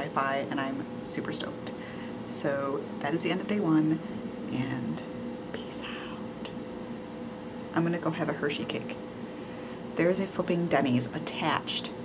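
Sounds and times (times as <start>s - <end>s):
faint steady hum: 0.0s - 12.0s
woman whispering: 5.5s - 6.6s.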